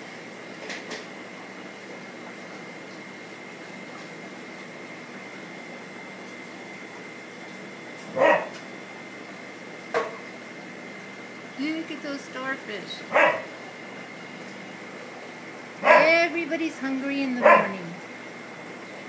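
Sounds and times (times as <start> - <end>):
aquarium equipment hum and hiss: 0.0 - 19.0.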